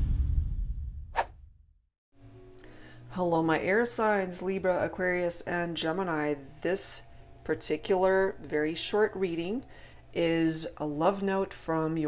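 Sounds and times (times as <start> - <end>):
low hum: 0.0 - 1.6
swish sound effect: 0.0 - 1.6
music: 2.1 - 12.0.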